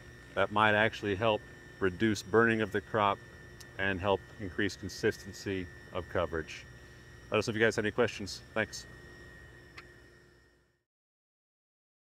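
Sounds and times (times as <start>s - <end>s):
thin steady hums: 0.0s - 10.9s.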